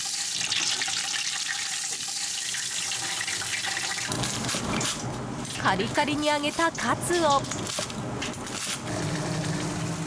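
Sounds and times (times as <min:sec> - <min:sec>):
food deep-frying in hot oil: 0:00.0 - 0:07.8.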